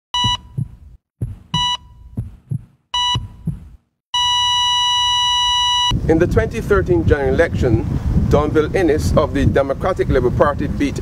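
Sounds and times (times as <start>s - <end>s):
long steady monitor beep: 0.2s - 0.5s, 1.6s - 2.0s, 3.0s - 3.4s, 4.2s - 5.9s
heartbeat thumps: 0.2s - 3.9s
heart monitor beep: 0.2s - 6.0s.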